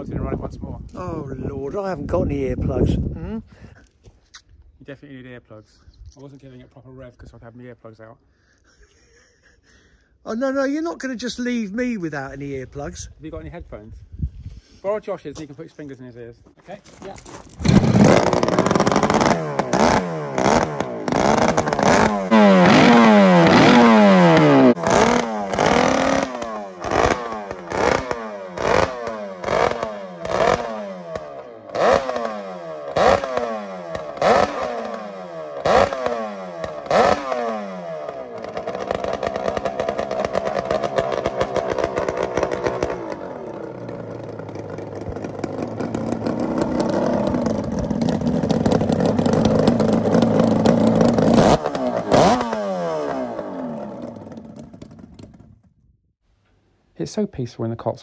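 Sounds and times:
two-stroke engine revving: 17.5s - 55.4s.

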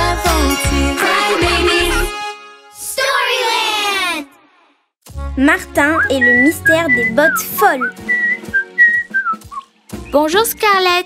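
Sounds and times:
cartoon character whistling: 5.9s - 9.6s.

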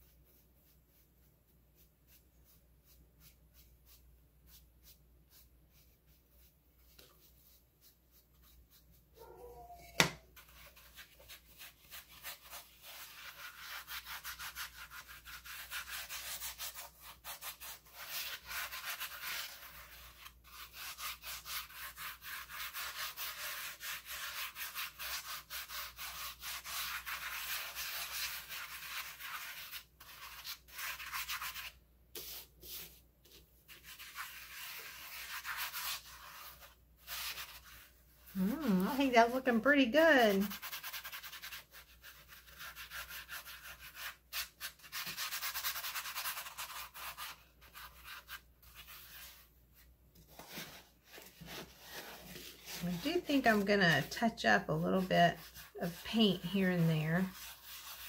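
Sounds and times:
brush scrubbing plastic: 0.0s - 58.0s.

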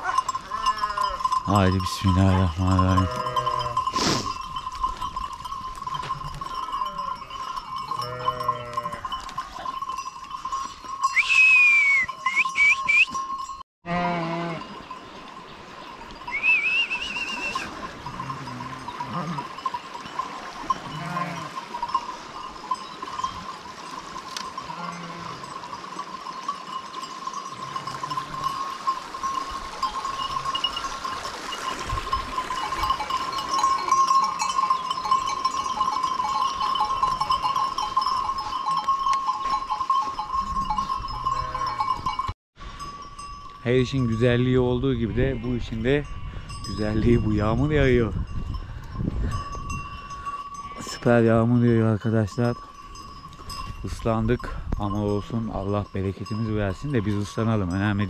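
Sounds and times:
livestock bells ringing: 0.0s - 58.0s
sheep bleating: 2.3s - 3.9s, 7.9s - 9.1s, 13.8s - 14.7s, 20.8s - 21.6s, 24.6s - 25.5s.

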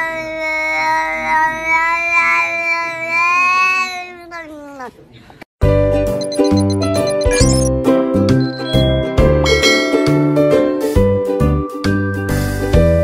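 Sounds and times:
cat yowling: 0.5s - 4.9s
music with jingling notes: 6.1s - 11.4s.

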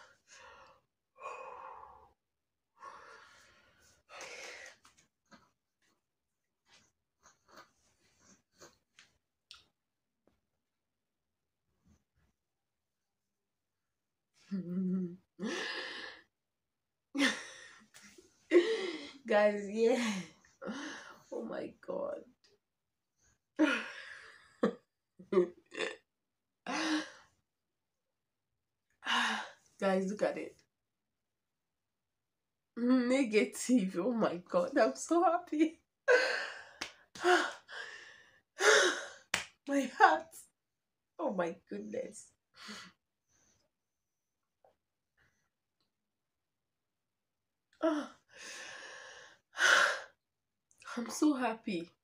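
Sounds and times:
woman laughing breathily: 18.5s - 19.2s.

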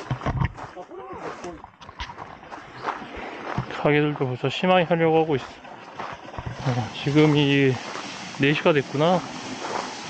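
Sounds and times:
footsteps on a path: 0.0s - 4.4s, 5.4s - 8.2s, 9.3s - 10.0s.

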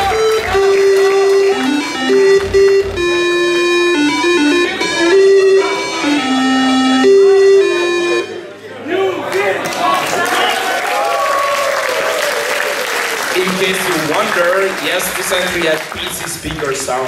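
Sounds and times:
chiptune electronic melody: 0.0s - 8.5s.

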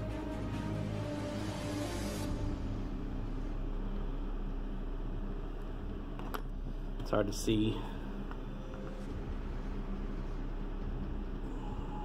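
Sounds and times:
room noise hum and hiss: 0.0s - 12.0s.

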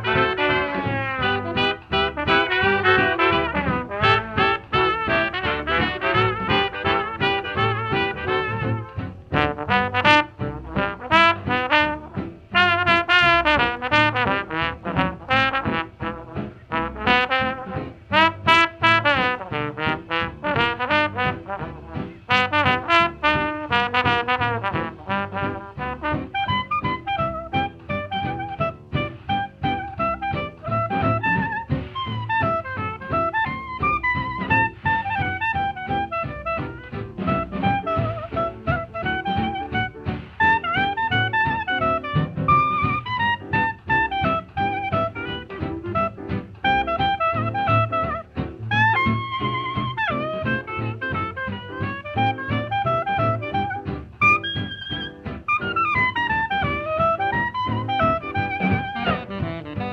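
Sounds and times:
brass band playing ragtime: 0.0s - 59.9s.

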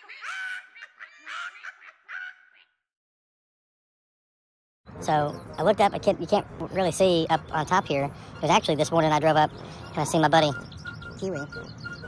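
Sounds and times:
bird calling: 7.5s - 12.0s.

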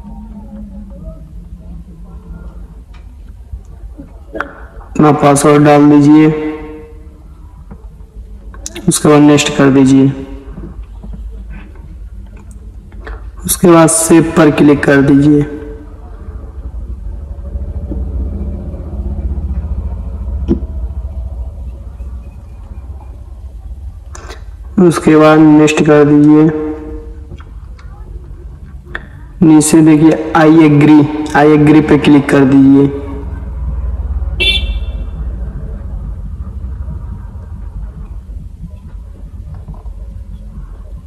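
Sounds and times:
vehicle rumble inside cab: 16.1s - 24.8s, 33.2s - 41.0s
vehicle horn toot: 34.4s - 35.2s.

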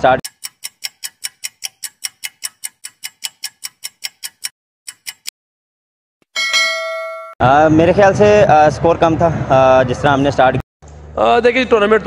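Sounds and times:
timer clock ticking: 0.0s - 5.3s
chime ringing: 6.3s - 7.4s.

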